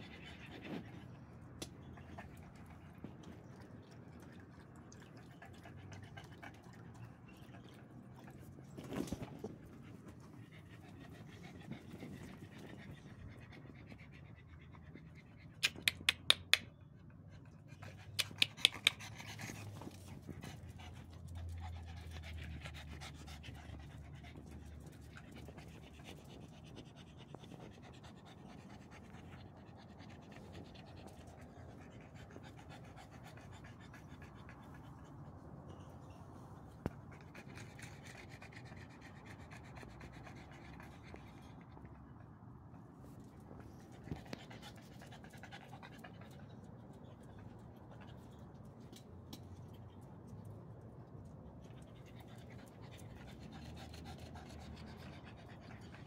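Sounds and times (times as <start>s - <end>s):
dog panting: 5.1s - 49.9s, 51.4s - 56.0s.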